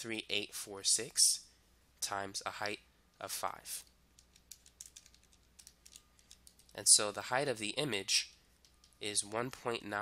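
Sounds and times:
faint keys clicking: 3.8 - 6.9, 8.3 - 9.1.

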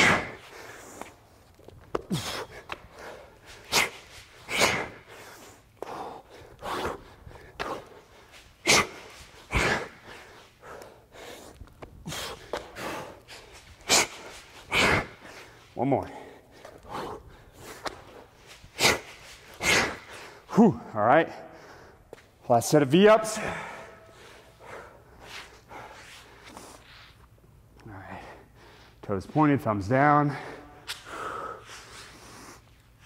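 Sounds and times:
man breathing hard: 0.0 - 20.5, 23.3 - 26.9, 30.3 - 32.7.

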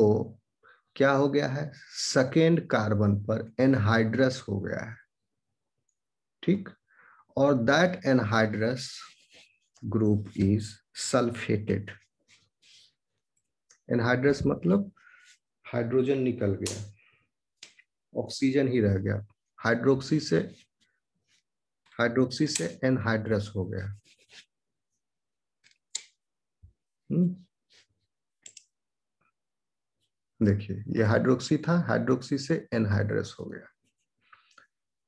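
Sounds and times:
person speaking: 7.4 - 17.0, 17.6 - 24.5
computer mouse click: 28.4 - 28.7.

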